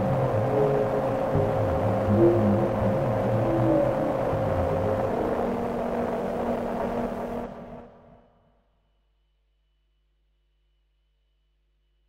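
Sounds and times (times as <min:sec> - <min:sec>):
dense wall of noise: 0:00.0 - 0:08.2
low drone tone: 0:00.0 - 0:08.2.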